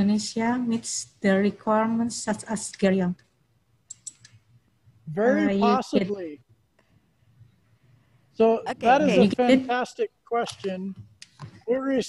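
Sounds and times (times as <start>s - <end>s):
woman speaking: 0.0s - 3.3s, 5.2s - 6.1s, 8.7s - 9.7s.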